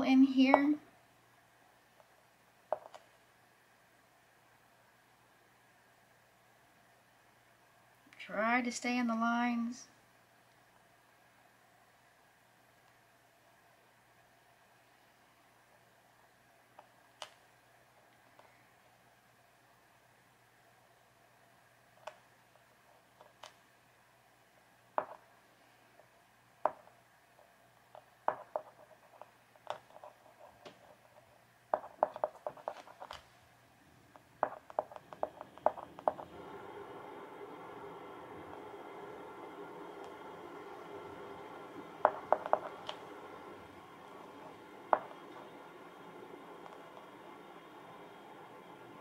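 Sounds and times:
steady hum: 0:00.0 - 0:49.0
marker tip tapping canvas: 0:28.3 - 0:28.9, 0:31.7 - 0:33.2, 0:34.4 - 0:36.2, 0:42.0 - 0:43.0.

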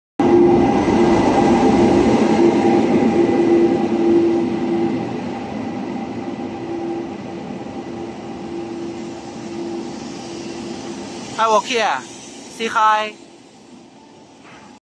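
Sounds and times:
electric train rumble and whine: 0:00.2 - 0:14.8.

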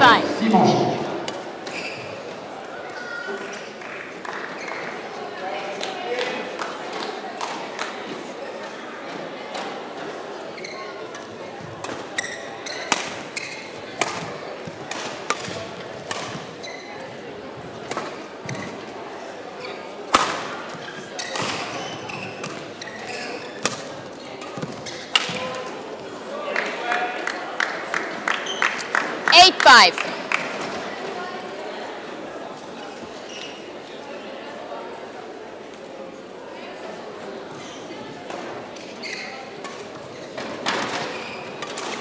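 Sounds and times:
murmur of voices in hall: 0:00.0 - 0:42.0
rackets hitting shuttlecock: 0:14.9 - 0:16.5.

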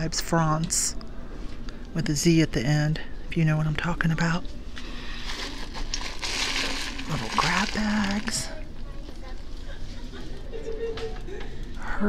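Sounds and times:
plastic bags crinkling: 0:04.8 - 0:10.8.

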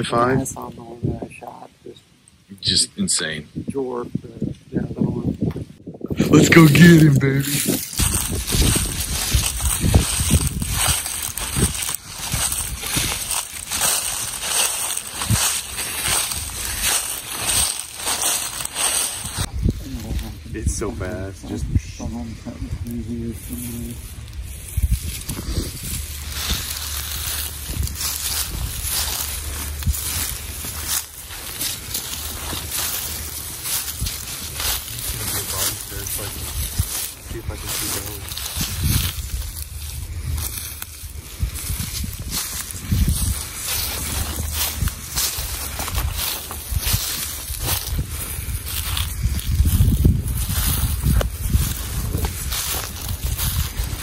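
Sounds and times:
footsteps through dry grass: 0:06.2 - 0:54.0.

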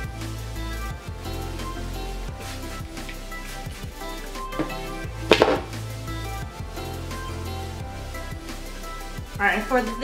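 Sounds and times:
background music with steady beat: 0:00.0 - 0:10.0
spray bottle spritzes: 0:04.6 - 0:05.8.

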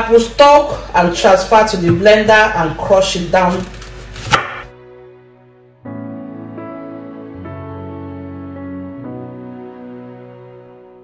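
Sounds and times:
faint background music: 0:00.0 - 0:11.0
knife chopping apple on board: 0:03.5 - 0:04.7.

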